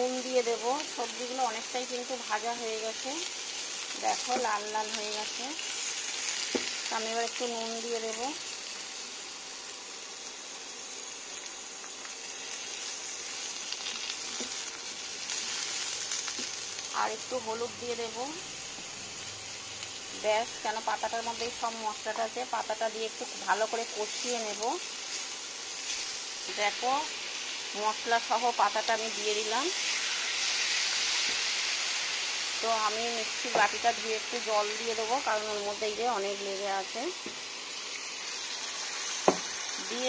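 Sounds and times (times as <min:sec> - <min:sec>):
vegetables sizzling in oil: 0:00.0 - 0:40.0.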